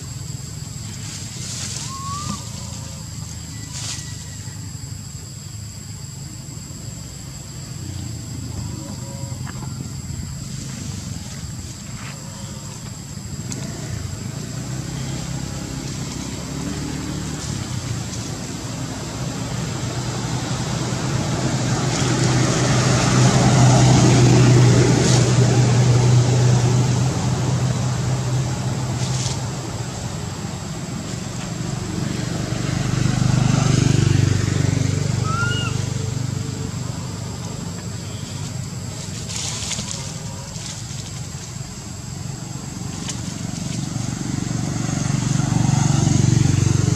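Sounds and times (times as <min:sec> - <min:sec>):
motor vehicle engine running: 0:00.0 - 0:46.9.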